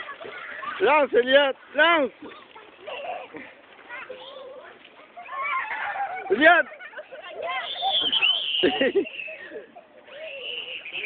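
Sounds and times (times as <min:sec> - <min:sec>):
children squealing and shouting: 0:02.2 - 0:11.0.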